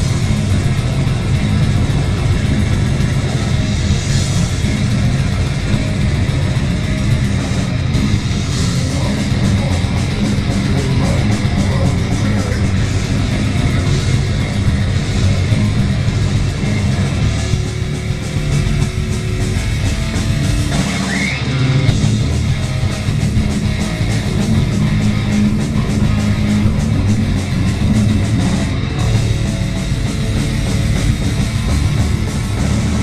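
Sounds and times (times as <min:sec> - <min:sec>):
bass guitar: 0:00.0 - 0:33.0
distorted electric guitar: 0:00.0 - 0:33.0
drums: 0:00.0 - 0:33.0.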